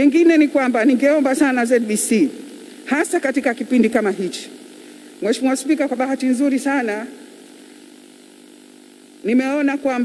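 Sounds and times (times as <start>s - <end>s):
steady hum with hiss: 0.0s - 10.0s.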